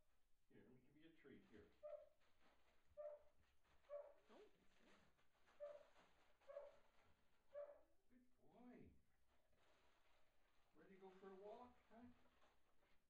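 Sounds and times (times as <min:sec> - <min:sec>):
dog giving soft calls: 0:03.0 - 0:04.5, 0:05.5 - 0:06.9.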